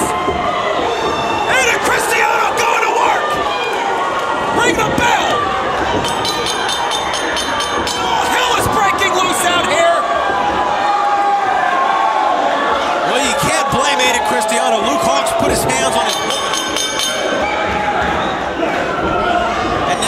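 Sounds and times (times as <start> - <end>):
crowd shouting: 0.0 - 20.0.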